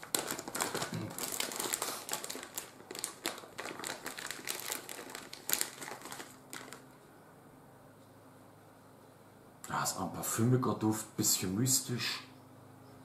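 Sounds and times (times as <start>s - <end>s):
plastic packaging crinkling: 0.0s - 7.0s.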